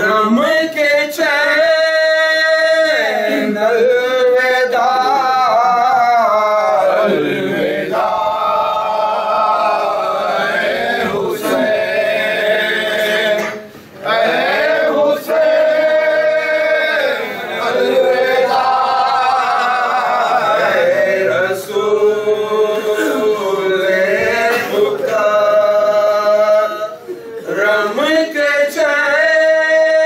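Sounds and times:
men chanting a lament: 0.0 - 30.0.

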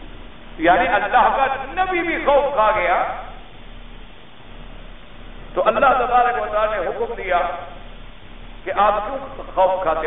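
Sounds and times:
faint recording hiss: 0.0 - 10.0
man lecturing: 0.6 - 3.3, 5.6 - 7.8, 8.6 - 10.0.

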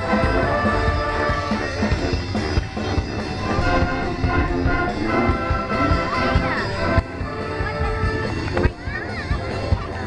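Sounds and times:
marching brass band playing: 0.0 - 8.7.

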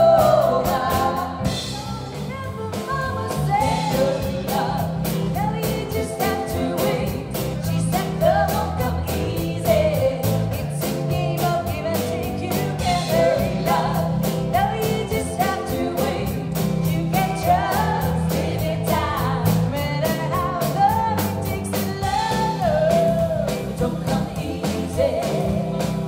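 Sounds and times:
drum kit beat: 0.0 - 26.0
electric bass: 0.0 - 26.0
keyboard: 0.0 - 26.0
woman singing lead vocal: 0.0 - 26.0.

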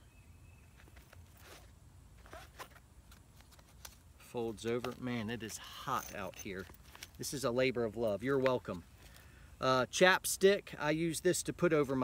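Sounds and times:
nylon pouch rustling: 0.8 - 7.4.

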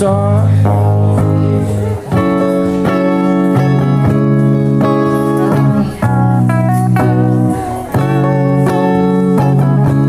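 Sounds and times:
electric guitars playing chords: 0.0 - 10.0.

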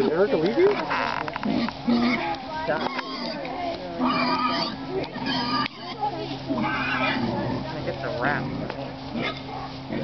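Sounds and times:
girls chattering and calling: 0.0 - 10.0
pigs grunting: 0.0 - 10.0
steady low hum: 0.0 - 10.0.

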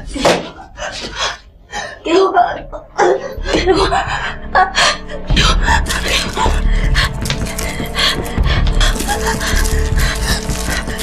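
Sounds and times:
low background music: 0.0 - 11.0
person gasping and breathing hard: 3.3 - 11.0.

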